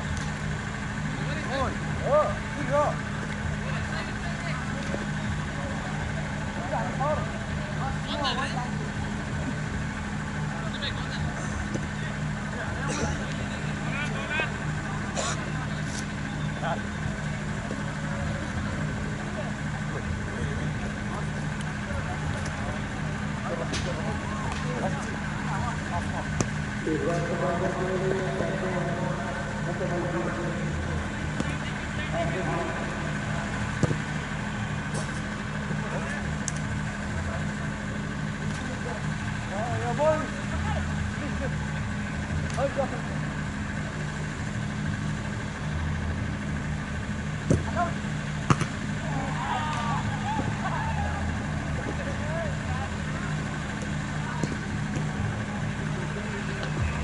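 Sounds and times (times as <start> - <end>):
low engine-like hum: 0.0 - 57.0.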